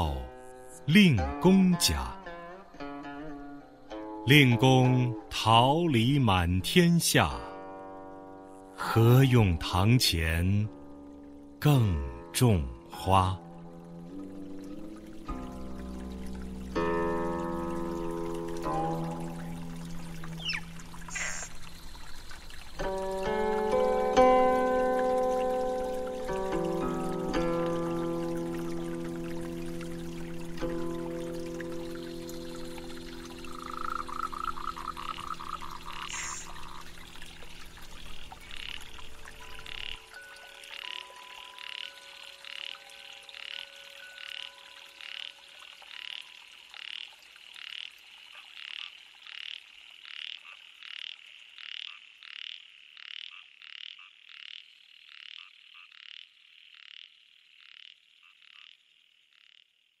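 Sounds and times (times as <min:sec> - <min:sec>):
soft background music: 0:00.0 - 0:47.3
frog calling: 0:19.1 - 0:23.0, 0:31.0 - 1:00.0.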